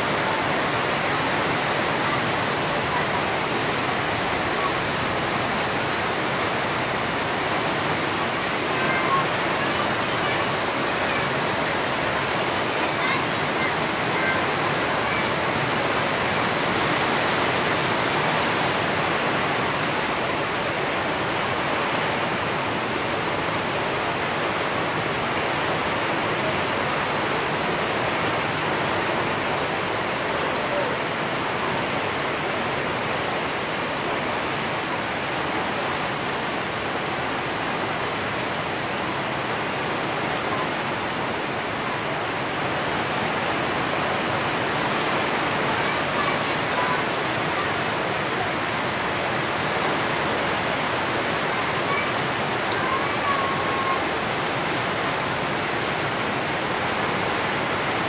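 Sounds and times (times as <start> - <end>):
heavy rain on trees and roof: 0.0 - 58.0.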